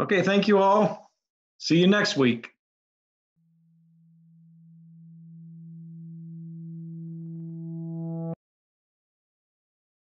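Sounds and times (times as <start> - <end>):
low electronic tone: 3.4 - 8.4.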